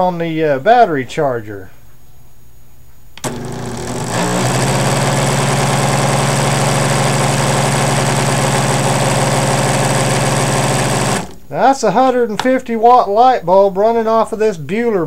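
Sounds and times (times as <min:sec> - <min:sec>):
cordless drill motor whine: 0:03.2 - 0:11.4.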